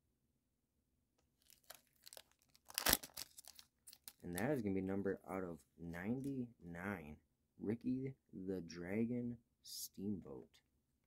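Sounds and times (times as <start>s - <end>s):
foil wrapper crinkling and tearing: 1.4s - 4.5s.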